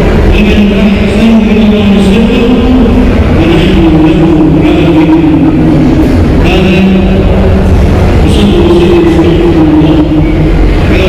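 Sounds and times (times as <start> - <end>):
loud voice chanting: 0.3 - 11.0.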